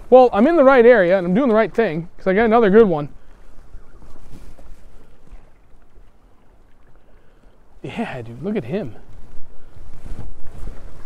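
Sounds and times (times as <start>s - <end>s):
water lapping against hull: 0.0s - 11.0s
wind buffeting microphone: 0.0s - 11.0s.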